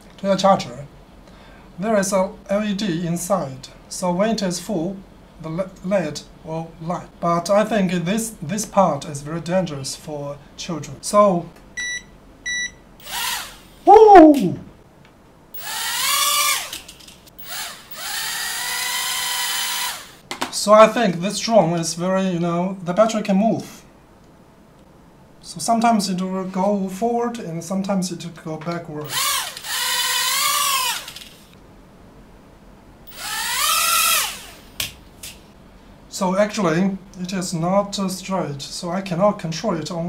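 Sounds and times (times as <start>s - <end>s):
toy drone motors whining: 13.0s - 13.9s, 15.6s - 20.2s, 29.1s - 31.5s, 33.1s - 34.7s.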